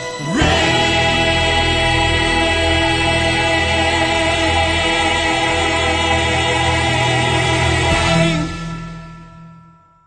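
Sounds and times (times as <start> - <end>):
choir holding a chord: 0.2 - 8.6.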